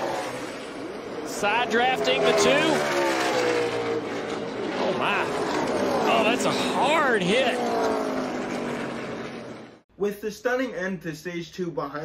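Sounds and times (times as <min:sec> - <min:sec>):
race car engines and track noise: 0:00.0 - 0:09.8.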